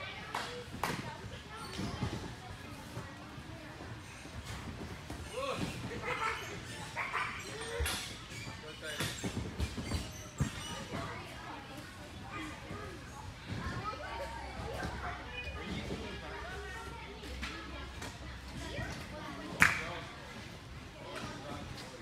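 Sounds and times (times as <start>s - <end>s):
echoing chatter of children and adults: 0.0s - 22.0s.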